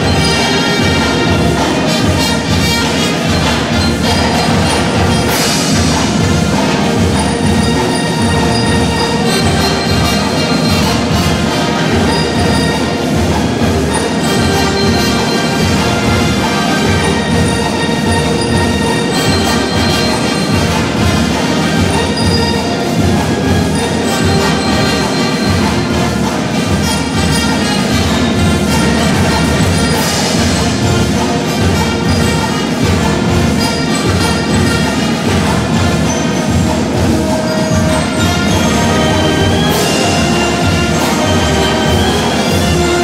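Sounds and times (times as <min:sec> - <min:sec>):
marching band playing: 0:00.0 - 0:43.0.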